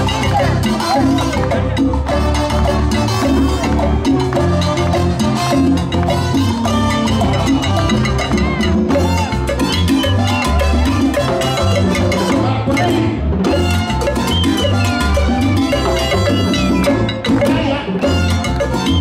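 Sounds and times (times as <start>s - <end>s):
bass line: 0.0s - 19.0s
congas and timbales: 0.0s - 19.0s
salsa band playing: 0.0s - 19.0s.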